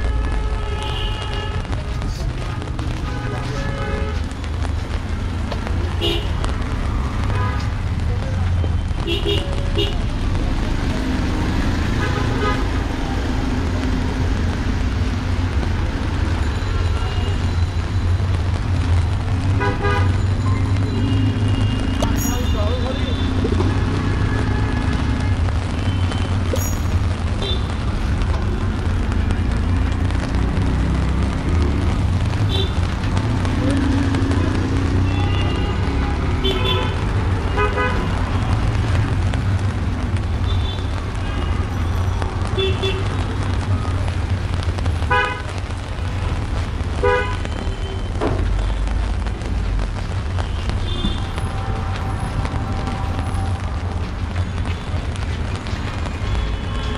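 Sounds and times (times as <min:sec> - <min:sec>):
street traffic: 0:00.0 - 0:56.9
voices of passers-by: 0:00.0 - 0:56.9.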